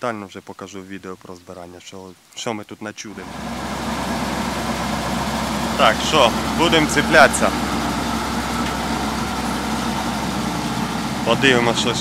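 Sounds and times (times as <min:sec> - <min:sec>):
diesel engine idling: 0:03.2 - 0:12.0.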